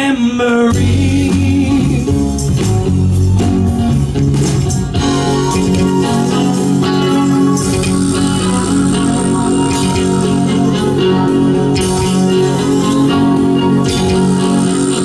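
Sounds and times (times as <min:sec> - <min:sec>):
rock band playing: 0:00.0 - 0:15.0.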